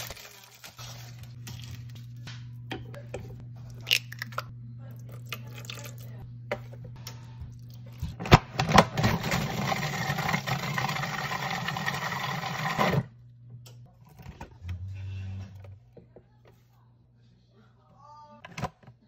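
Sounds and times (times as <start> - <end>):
food processor motor running: 8.8 - 13.1.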